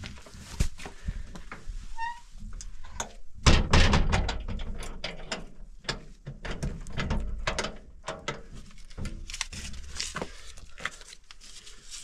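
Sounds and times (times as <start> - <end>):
clatter of knocks and clicks: 3.5 - 8.4.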